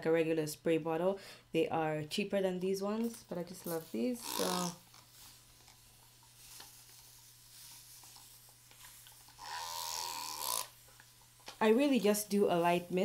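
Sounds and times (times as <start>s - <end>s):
spray bottle misting: 3.0s - 13.0s.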